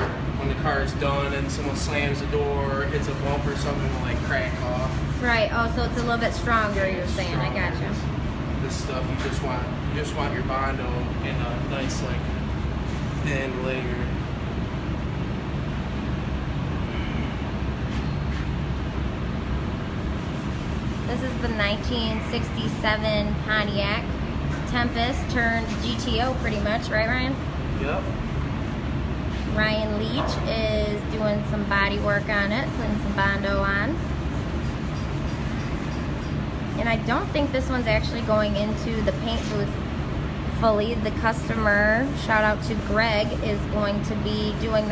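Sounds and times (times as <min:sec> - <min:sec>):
low mechanical rumble: 0:00.0 - 0:44.9.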